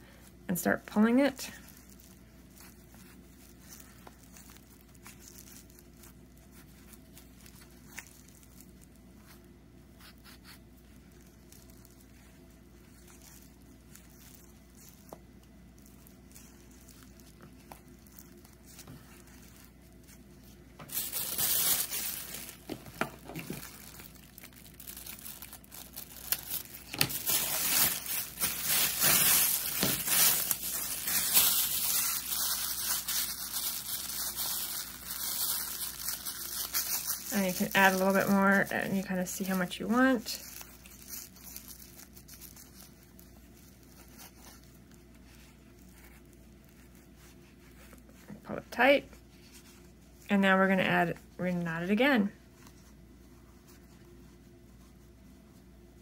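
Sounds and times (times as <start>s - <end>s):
plastic bag crinkling: 0.0s - 54.0s.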